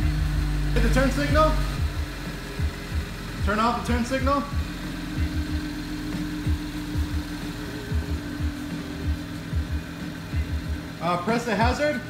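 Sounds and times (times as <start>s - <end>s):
bass thumps of music: 0.0s - 12.0s
car engine idling: 0.0s - 12.0s.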